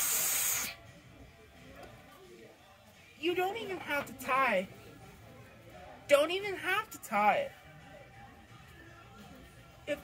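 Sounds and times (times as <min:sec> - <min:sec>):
helium hissing into balloon: 0:00.0 - 0:00.8.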